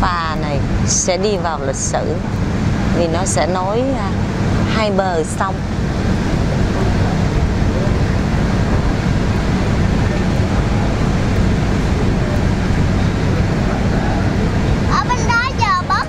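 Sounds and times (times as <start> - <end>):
rushing noise: 0.0 - 16.0
ship engines droning: 0.0 - 16.0.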